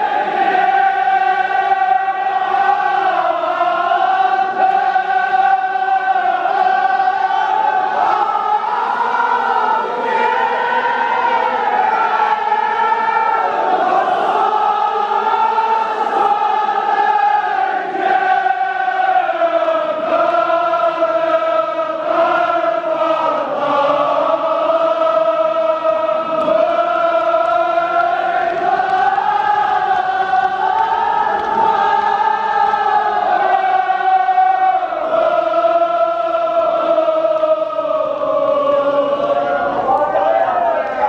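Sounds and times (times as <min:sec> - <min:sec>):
men's chorus singing elegy: 0:00.0 - 0:41.0.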